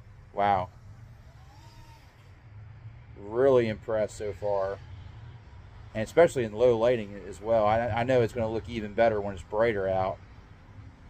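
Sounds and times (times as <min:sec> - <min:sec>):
faint whine rising and falling: 0:00.0 - 0:11.0
low steady hum: 0:00.0 - 0:11.0.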